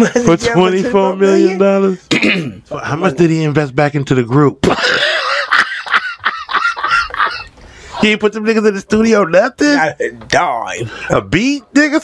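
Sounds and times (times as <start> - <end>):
man laughing hard: 4.6 - 7.5.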